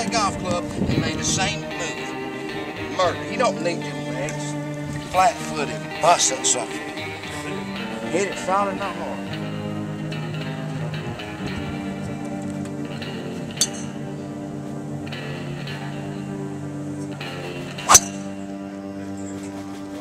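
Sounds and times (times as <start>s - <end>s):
guitar background music: 0.0s - 20.0s
golf driver striking ball: 17.8s - 18.3s.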